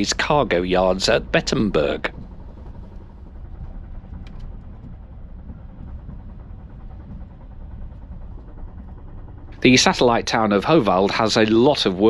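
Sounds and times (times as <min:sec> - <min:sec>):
train carriage low rumble: 0:00.0 - 0:12.0.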